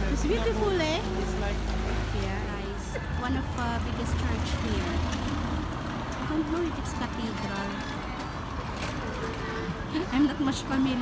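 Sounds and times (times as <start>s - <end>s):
passersby talking: 0.0s - 11.0s
vehicle engine humming: 0.0s - 11.0s.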